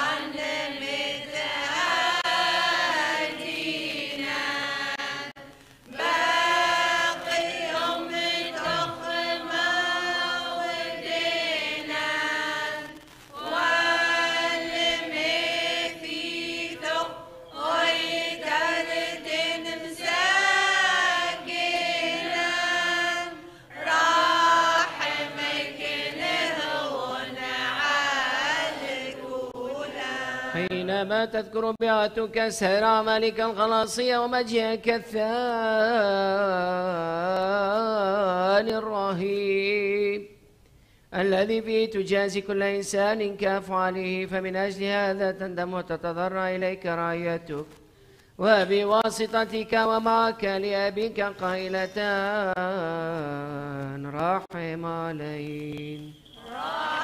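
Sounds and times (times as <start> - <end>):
choir chanting: 0.0 - 30.9, 56.3 - 57.0.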